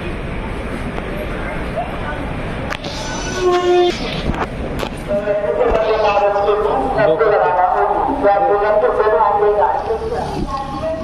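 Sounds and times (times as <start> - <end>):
platform noise: 2.7 - 11.0.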